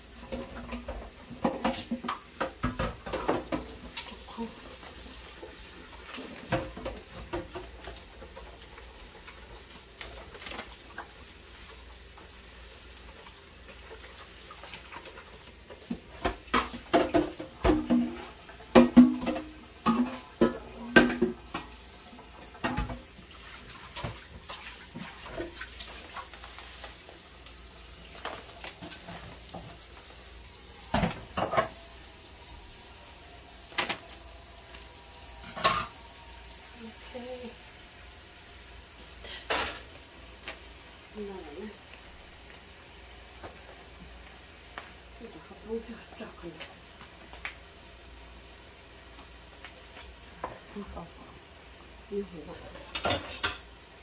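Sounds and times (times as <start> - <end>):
metal dishes clattering: 16.2 - 21.7, 30.9 - 31.9, 35.4 - 36.1, 39.4 - 39.9, 52.8 - 53.7.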